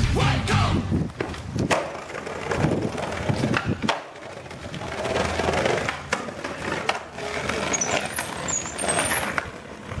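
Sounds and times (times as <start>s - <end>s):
skateboard wheels rolling on asphalt: 0.8s - 10.0s
skateboard clicks: 1.1s - 10.0s.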